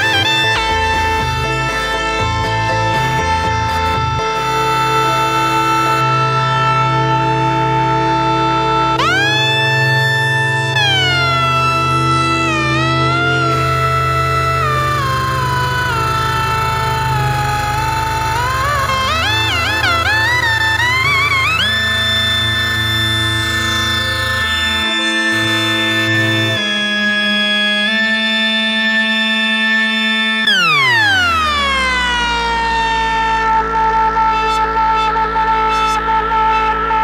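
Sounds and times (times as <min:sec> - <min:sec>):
gliding synthesizer lead note: 0:00.0 - 0:37.0
pulsing low bass drone: 0:00.0 - 0:37.0.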